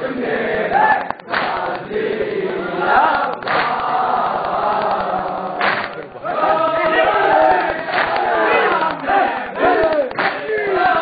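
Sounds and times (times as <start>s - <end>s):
crowd of men chanting: 0.0s - 11.0s
hands slapping chests: 1.0s - 1.9s, 3.1s - 3.8s, 4.4s - 6.1s, 6.8s - 10.5s.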